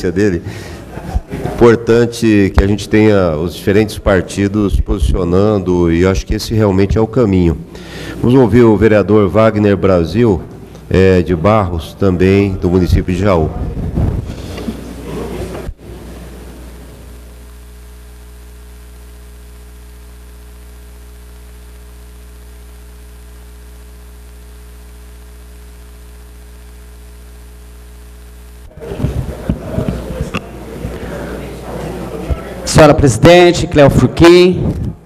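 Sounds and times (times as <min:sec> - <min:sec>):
electrical mains hum: 0:00.0 - 0:35.0.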